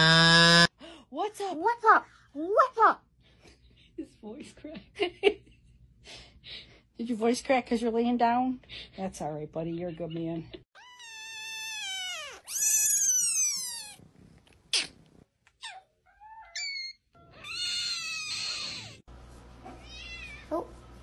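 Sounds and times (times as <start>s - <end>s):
kittens meowing: 10.8s - 14.0s.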